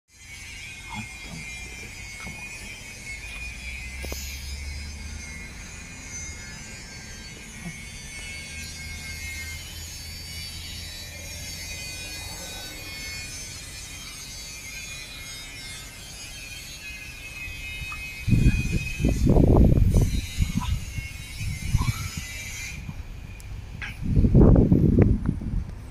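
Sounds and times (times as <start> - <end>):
steady high-pitched tone: 0.1 - 25.0
jet airliner passing overhead: 0.9 - 24.8.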